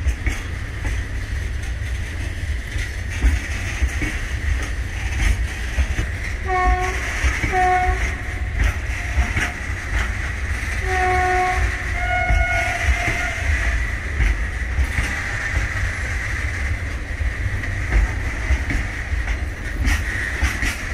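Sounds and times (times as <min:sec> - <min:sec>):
freight train rumbling past: 0:00.0 - 0:20.9
train wheel clicks on rail joints: 0:00.0 - 0:20.9
train horn toots: 0:06.4 - 0:08.6, 0:10.8 - 0:13.8.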